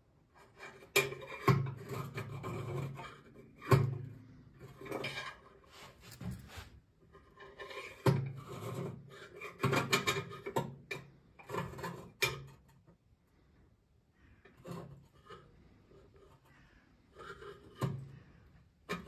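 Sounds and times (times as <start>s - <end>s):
screwdriver scraping metal tank: 0.4s - 4.0s, 7.1s - 12.9s, 14.4s - 19.0s.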